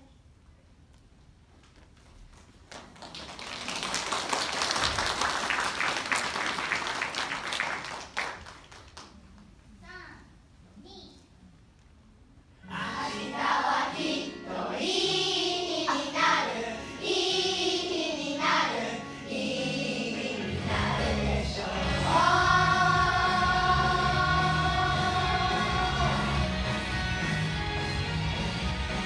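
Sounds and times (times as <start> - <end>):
children's choir singing: 12.6 - 26.9
musical accompaniment with low bass: 20.6 - 29.0.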